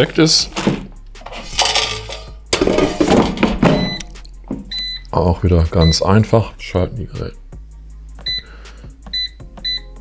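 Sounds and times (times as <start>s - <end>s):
knocks and rattling: 1.5s - 4.7s.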